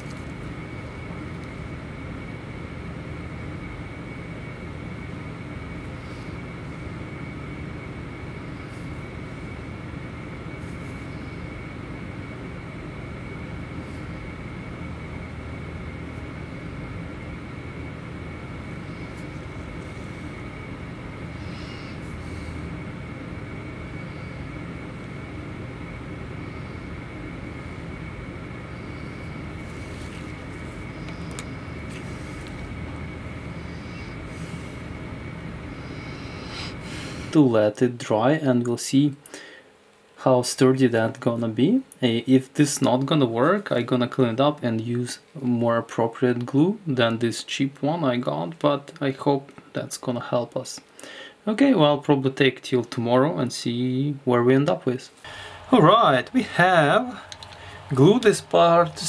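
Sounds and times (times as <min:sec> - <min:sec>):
droning machinery hum with whine: 0:00.0 - 0:59.0.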